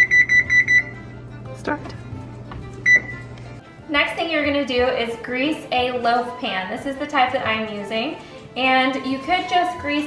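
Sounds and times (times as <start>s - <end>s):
oven control panel beep: 0.0s - 1.2s, 2.8s - 3.3s.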